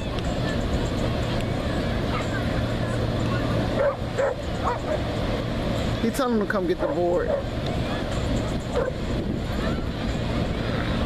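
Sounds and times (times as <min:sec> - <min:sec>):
ocean surf: 0:00.0 - 0:11.0
dogs barking: 0:03.8 - 0:05.0, 0:08.7 - 0:09.0.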